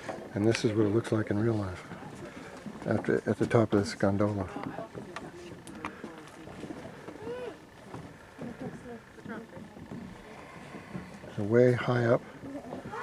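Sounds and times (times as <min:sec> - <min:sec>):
faint voices talking quietly: 0:00.4 - 0:13.0.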